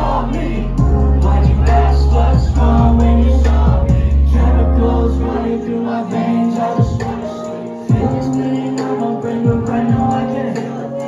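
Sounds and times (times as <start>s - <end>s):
deep bass: 0.0s - 5.5s.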